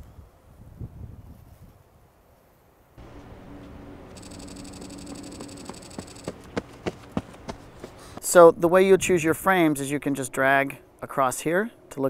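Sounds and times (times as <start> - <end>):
low buzzing hum: 3.0 - 12.0
sharp clicks: 4.1 - 7.3.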